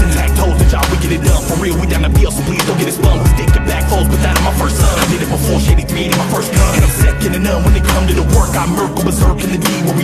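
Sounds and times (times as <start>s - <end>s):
hip-hop beat with heavy bass: 0.0s - 10.0s
person rapping over a beat: 0.0s - 10.0s.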